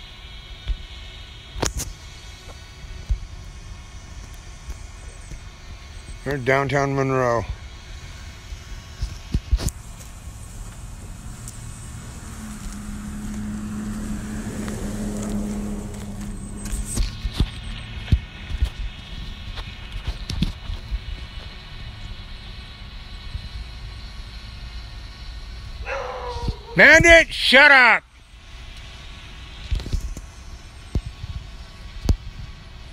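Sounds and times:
low outdoor rumble: 0:00.0 - 0:32.9
motor vehicle passing: 0:09.7 - 0:20.1, 0:25.8 - 0:27.1.

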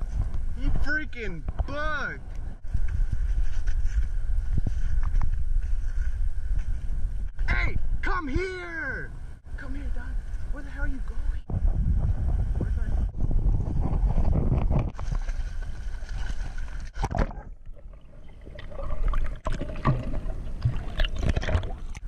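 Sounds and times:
muffled wind rumble: 0:00.0 - 0:22.0
muffled water sloshing and bubbling: 0:11.5 - 0:22.0.

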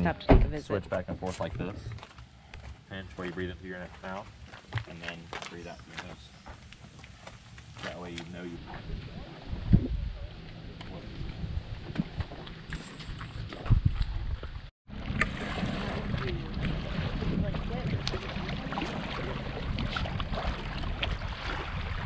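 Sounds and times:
wind rumble on microphone: 0:08.6 - 0:22.0
waves lapping on rocky shore: 0:14.9 - 0:22.0.

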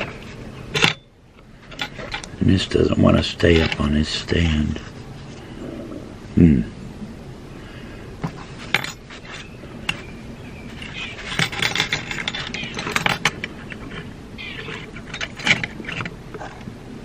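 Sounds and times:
metallic clicks and rattles: 0:10.7 - 0:16.1.

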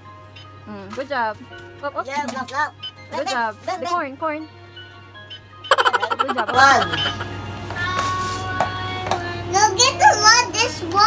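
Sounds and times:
child's voice: 0:09.5 - 0:11.0.

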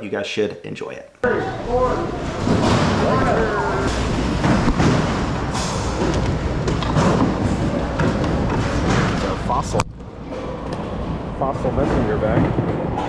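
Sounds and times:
indistinct voices: 0:01.2 - 0:07.1
knocks and thuds: 0:02.2 - 0:09.6.

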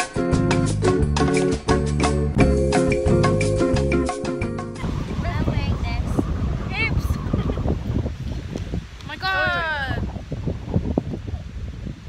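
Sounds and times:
wind buffeting microphone: 0:04.8 - 0:12.0.

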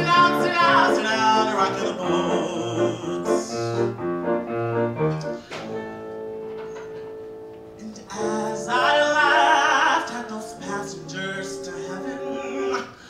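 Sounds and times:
man singing: 0:00.0 - 0:03.9, 0:07.8 - 0:13.0
piano accompaniment: 0:00.0 - 0:13.0.

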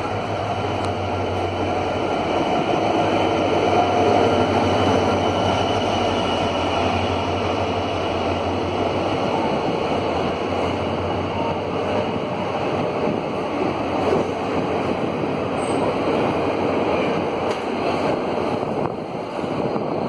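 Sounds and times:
diesel locomotive engine: 0:00.0 - 0:20.0
passenger coaches rolling by: 0:00.0 - 0:20.0.

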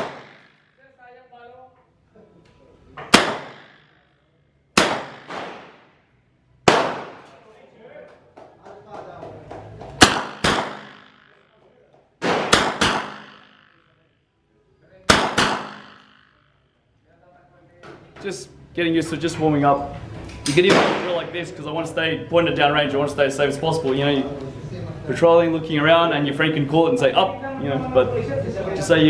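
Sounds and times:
submachine gun shots: 0:00.0 - 0:00.6, 0:03.1 - 0:03.8, 0:04.8 - 0:05.9, 0:06.7 - 0:07.3, 0:10.0 - 0:11.4, 0:12.2 - 0:13.6, 0:15.1 - 0:16.2
gunshot echo: 0:00.0 - 0:00.7, 0:03.0 - 0:04.0, 0:04.8 - 0:06.0, 0:06.6 - 0:07.4, 0:10.0 - 0:11.5, 0:12.2 - 0:13.8, 0:15.1 - 0:16.4, 0:20.7 - 0:21.4.

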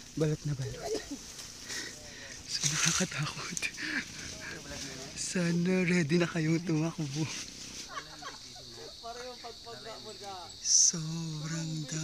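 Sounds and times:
high-pitched insect chorus: 0:00.0 - 0:12.0
people talking: 0:00.1 - 0:01.2, 0:01.9 - 0:12.0.

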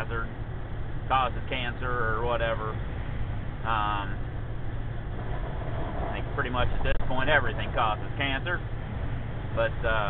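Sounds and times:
road and tyre noise: 0:00.0 - 0:10.0
truck engine drone: 0:00.0 - 0:10.0.

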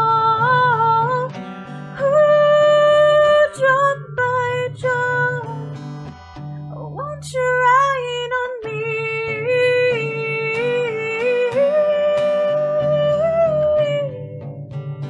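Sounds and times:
strummed acoustic guitar: 0:00.0 - 0:15.0.

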